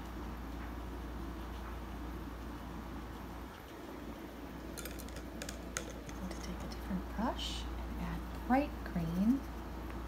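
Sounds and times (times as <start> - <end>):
steady low hum: 0.0 - 10.0
light sharp clicks and taps: 4.8 - 6.8.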